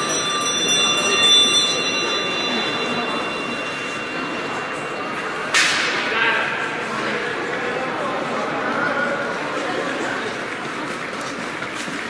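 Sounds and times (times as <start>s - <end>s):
hall chatter: 0.0s - 12.0s.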